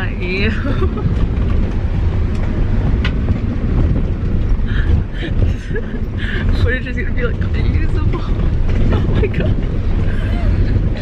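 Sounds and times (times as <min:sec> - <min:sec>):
car driving rumble inside cabin: 0:00.0 - 0:11.0.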